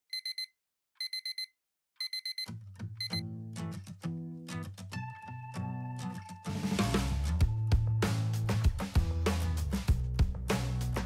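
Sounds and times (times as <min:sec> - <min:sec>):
smartphone alarm beeping: 0:00.1 - 0:03.2
music with deep bass line: 0:06.8 - 0:11.0.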